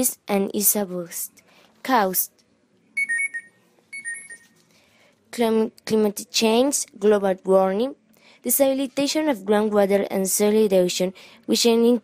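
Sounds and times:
electronic ringing trill: 0:03.0 - 0:04.6.

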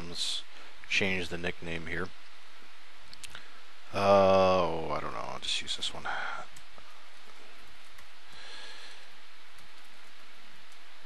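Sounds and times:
background hiss: 0:00.0 - 0:11.0
keyboard typing clicks: 0:09.5 - 0:10.8.

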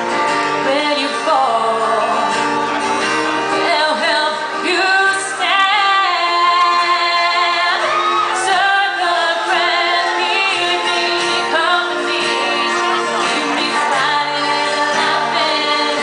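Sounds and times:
strummed acoustic guitars: 0:00.0 - 0:16.0
woman singing: 0:00.5 - 0:02.6, 0:03.5 - 0:16.0.

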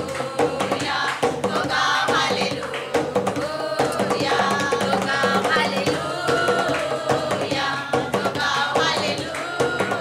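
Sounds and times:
drum and percussion: 0:00.0 - 0:10.0
women singing: 0:00.0 - 0:10.0.

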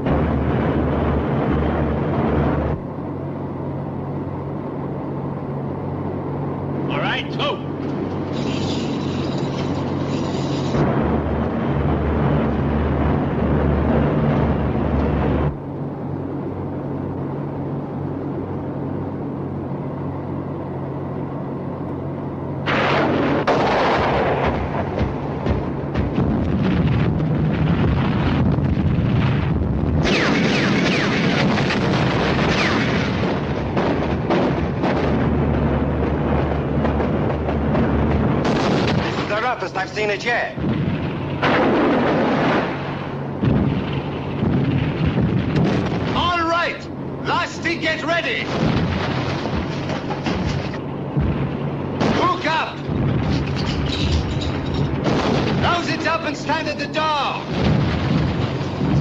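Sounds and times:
plane engines droning: 0:00.0 - 0:59.0.

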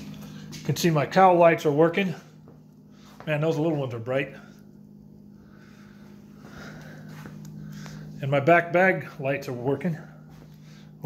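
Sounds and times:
soft footsteps: 0:00.0 - 0:01.4, 0:02.0 - 0:04.4, 0:05.9 - 0:08.2, 0:08.9 - 0:10.8
low hum: 0:00.0 - 0:11.0.

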